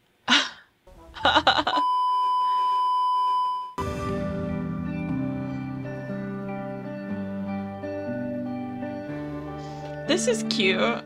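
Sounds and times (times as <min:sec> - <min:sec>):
soft music: 0:00.9 - 0:01.8, 0:03.8 - 0:11.0
sharp hits: 0:03.8 - 0:06.8.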